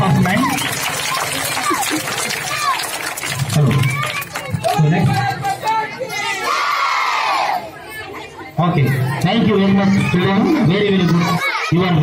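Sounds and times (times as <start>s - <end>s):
children cheering: 0.0s - 4.8s.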